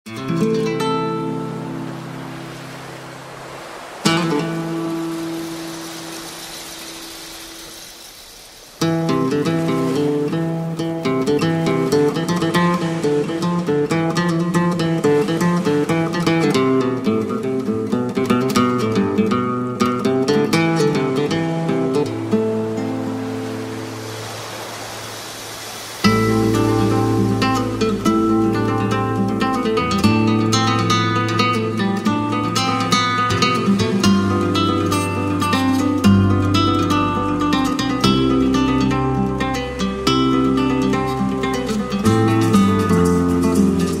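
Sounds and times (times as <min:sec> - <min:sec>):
steady rushing hiss: 0:01.6 - 0:13.8, 0:22.3 - 0:31.5
strummed acoustic guitar chord: 0:26.1 - 0:44.0.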